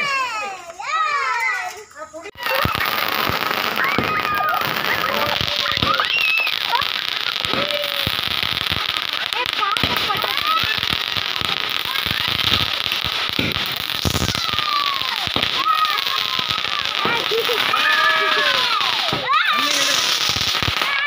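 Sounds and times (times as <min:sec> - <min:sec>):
fireworks crackling: 0:00.0 - 0:21.0
voices calling out: 0:00.0 - 0:21.0
sharp firework pops: 0:02.4 - 0:21.0.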